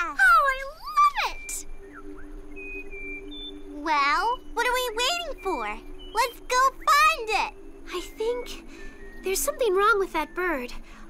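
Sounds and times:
voice: 0.0 - 1.6, 3.8 - 8.6, 9.2 - 10.8
soft background music: 0.0 - 11.0.

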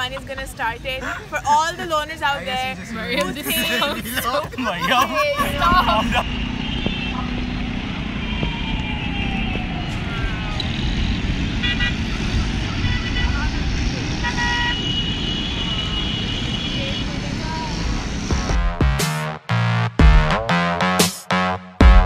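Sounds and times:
traffic engines rumbling: 0.0 - 18.9
car horn honks: 5.5 - 8.4, 10.6 - 13.5, 14.2 - 17.2.

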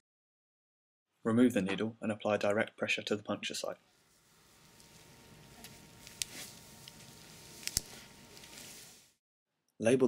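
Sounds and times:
tape rustling and handling: 4.5 - 9.2.

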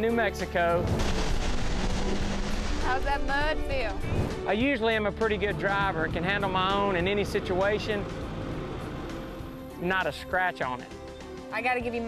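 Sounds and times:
steady rushing noise: 0.8 - 9.4
vehicle engine running hard: 5.4 - 9.9.

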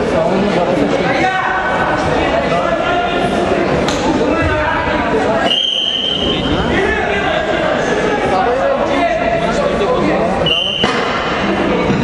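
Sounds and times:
spectators talking: 0.0 - 12.0
referee's whistle blast: 5.4 - 6.6, 10.4 - 11.0.

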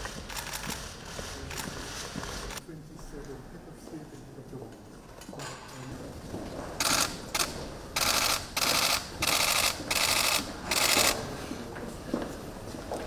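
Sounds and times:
camera shutters firing: 6.8 - 11.2.

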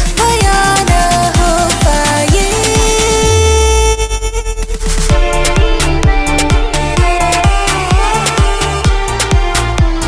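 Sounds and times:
electronic beat with kick drum: 0.0 - 3.4, 4.4 - 10.0
held synth melody: 4.9 - 9.7.

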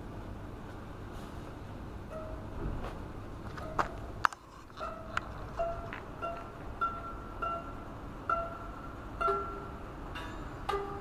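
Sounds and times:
piano strings plucked: 4.8 - 11.0.

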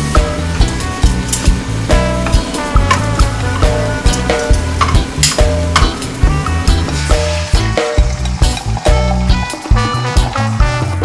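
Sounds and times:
shrimp sizzling in oil: 0.0 - 10.6
background music with beat: 0.0 - 11.0.

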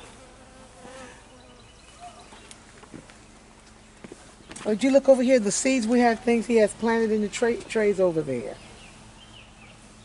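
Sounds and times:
flying insect buzzing: 0.0 - 1.8.

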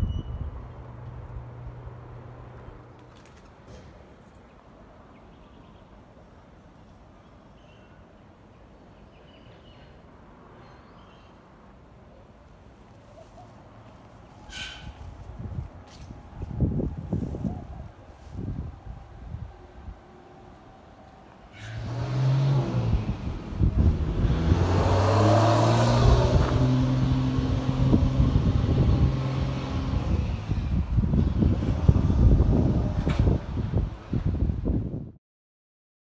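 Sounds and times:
wind buffeting microphone: 0.0 - 2.0, 14.7 - 20.1, 21.8 - 35.2
vehicle engine humming: 0.0 - 4.2, 13.0 - 34.2.

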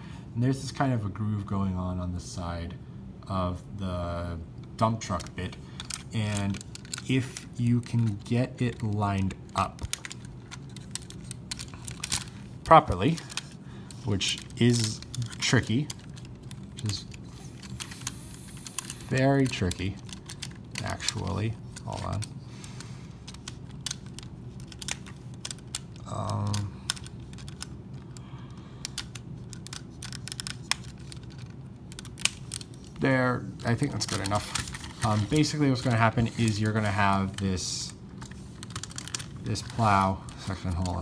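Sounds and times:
plastic toy parts clicking: 5.1 - 22.3, 23.2 - 28.2, 28.8 - 33.0, 33.6 - 41.0.

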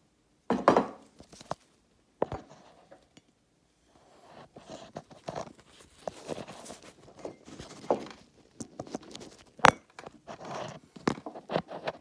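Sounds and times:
phone handling rustle: 4.5 - 12.0.

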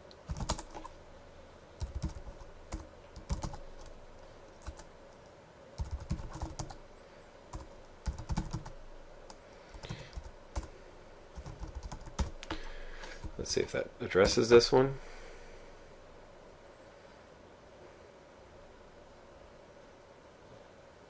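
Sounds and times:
typing on computer keyboard: 0.3 - 0.9, 1.8 - 3.9, 4.6 - 4.9, 5.8 - 6.8, 7.5 - 10.7, 11.4 - 12.5.

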